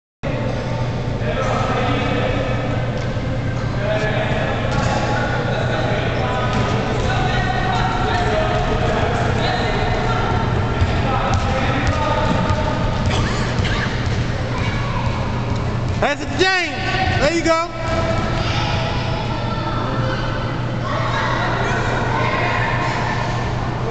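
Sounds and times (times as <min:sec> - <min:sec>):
indistinct overlapping voices: 0:00.3 - 0:23.9
steady low hum: 0:00.3 - 0:23.9.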